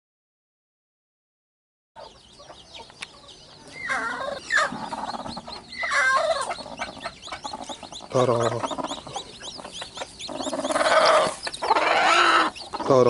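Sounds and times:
chicks peeping: 2.0s - 13.0s
hen clucking: 2.0s - 13.0s.

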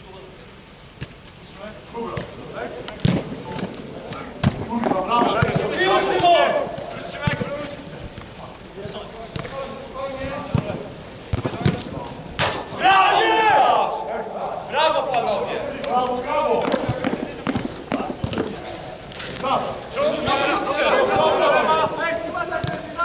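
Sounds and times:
players shouting: 3.9s - 8.0s, 12.4s - 18.8s, 19.4s - 23.0s
football kicks thudding: 4.4s - 5.8s.

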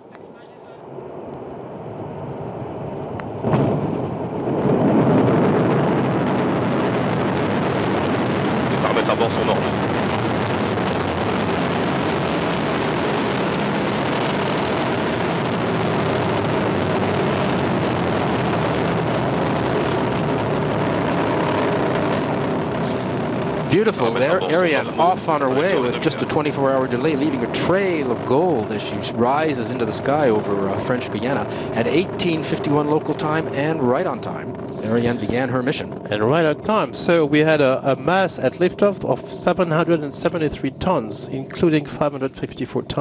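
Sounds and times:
rocket engines rumbling: 0.0s - 43.0s.

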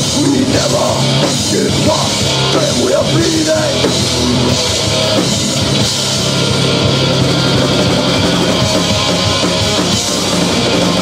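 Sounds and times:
bass: 0.0s - 11.0s
distorted electric guitars: 0.0s - 11.0s
drum kit: 0.0s - 11.0s.

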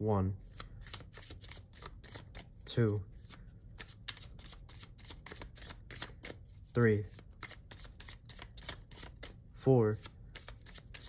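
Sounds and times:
cards being shuffled: 0.5s - 2.5s, 3.2s - 6.5s, 7.1s - 9.4s, 10.0s - 11.0s.

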